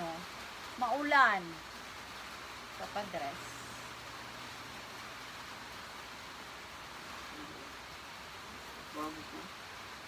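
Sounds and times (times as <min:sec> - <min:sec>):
steady rain hiss: 0:00.0 - 0:10.0.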